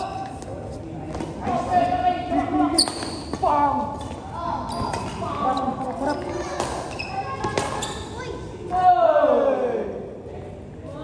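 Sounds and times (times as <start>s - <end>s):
shoes squeaking on court floor: 2.3s - 8.2s.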